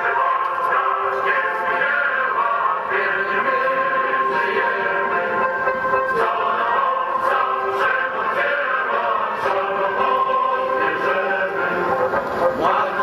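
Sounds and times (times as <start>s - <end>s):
group of people singing: 0.0s - 13.0s.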